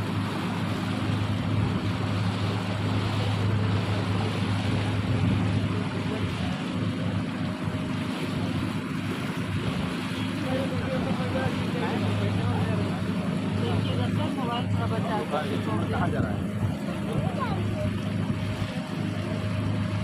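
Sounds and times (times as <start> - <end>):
churning water rushing: 0.0 - 20.0
motor boat engine droning: 0.0 - 20.0
wind: 0.0 - 20.0.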